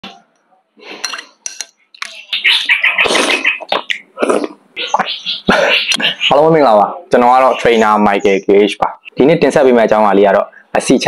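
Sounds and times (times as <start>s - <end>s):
spoon clinking against bowl: 1.0s - 1.8s
person slurping noodles: 4.2s - 4.6s.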